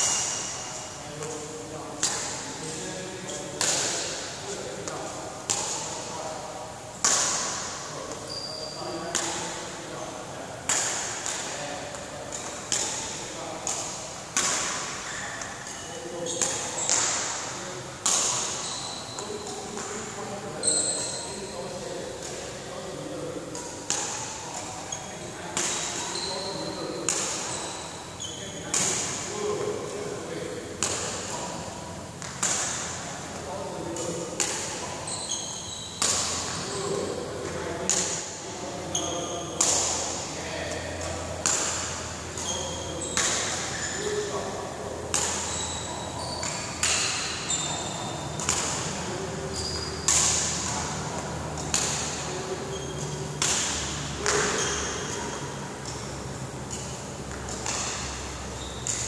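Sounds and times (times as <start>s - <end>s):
shoe squeaks: 0.0s - 1.5s, 2.6s - 4.1s, 7.2s - 10.2s, 14.9s - 17.3s, 18.2s - 22.9s, 24.1s - 29.6s, 34.8s - 37.2s, 38.6s - 40.8s, 42.4s - 44.6s, 45.2s - 51.0s, 51.6s - 59.0s
rackets hitting shuttlecock: 0.0s - 59.0s.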